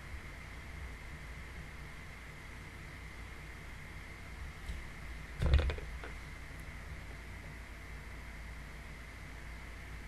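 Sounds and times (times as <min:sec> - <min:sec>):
microphone hum and hiss: 0:04.0 - 0:07.4
plastic tumbler knocks: 0:05.4 - 0:06.2.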